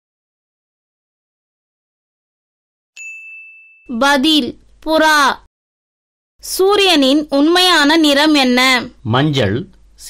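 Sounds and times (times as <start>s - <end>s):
bright ding chime: 3.0s - 4.0s.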